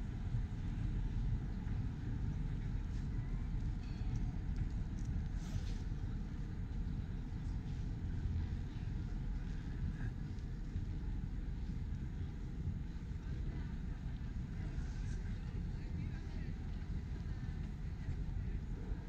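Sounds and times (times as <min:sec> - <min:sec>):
low city rumble: 0:00.0 - 0:19.0
faint voices: 0:00.2 - 0:19.0.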